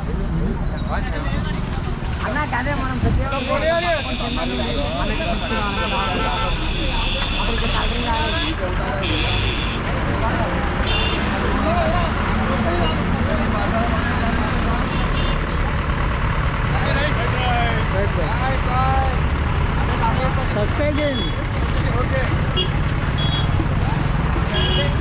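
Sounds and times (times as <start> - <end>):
vehicle engine and road noise: 0.0 - 25.0.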